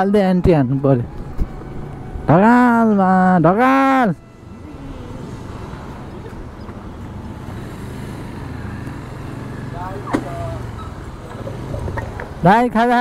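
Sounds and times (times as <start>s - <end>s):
scooter engine running: 4.4s - 12.4s.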